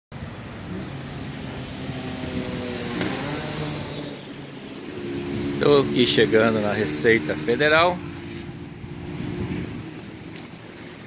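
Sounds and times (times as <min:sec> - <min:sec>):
street traffic: 0:00.1 - 0:11.0
vehicle engine running: 0:00.2 - 0:11.0.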